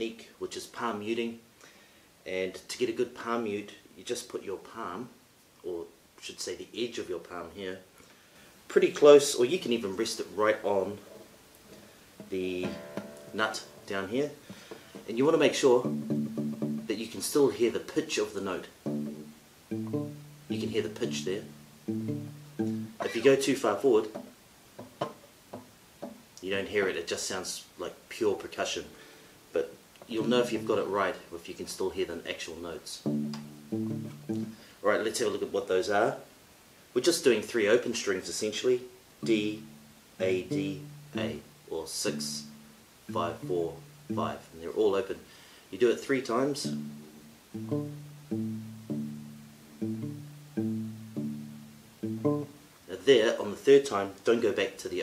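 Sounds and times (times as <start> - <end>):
guitar plucking low notes: 12.2 - 14.2, 15.5 - 17.0, 18.7 - 23.4, 30.1 - 30.9, 33.0 - 34.6, 39.2 - 44.6, 46.4 - 52.6.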